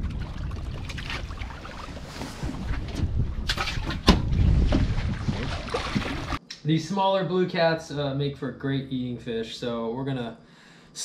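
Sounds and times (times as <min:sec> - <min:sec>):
wind buffeting microphone: 0:00.0 - 0:06.4.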